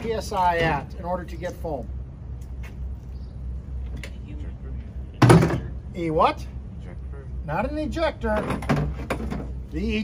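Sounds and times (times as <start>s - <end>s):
low steady rumble: 0.0s - 10.0s.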